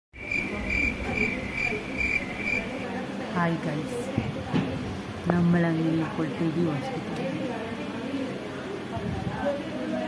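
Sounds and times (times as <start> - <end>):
cricket chirping: 0.2 - 2.8.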